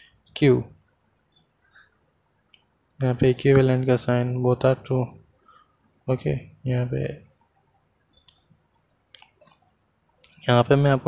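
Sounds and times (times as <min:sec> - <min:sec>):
person speaking: 0:02.6 - 0:05.2, 0:10.2 - 0:11.0.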